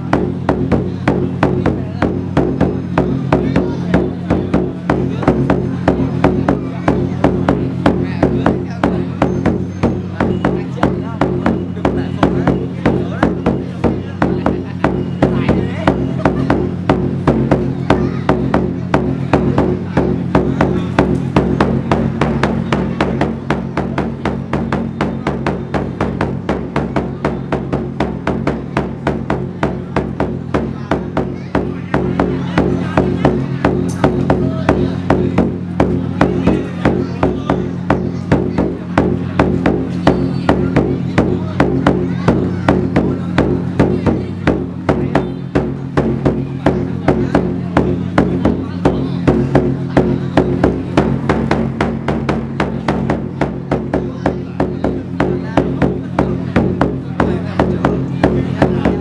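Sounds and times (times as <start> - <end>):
fast steady drumming: 0.0 - 59.0.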